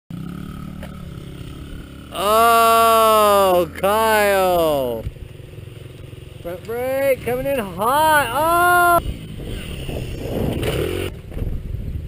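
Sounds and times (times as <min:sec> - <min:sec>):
dirt bike engine running: 0:00.1 - 0:12.0.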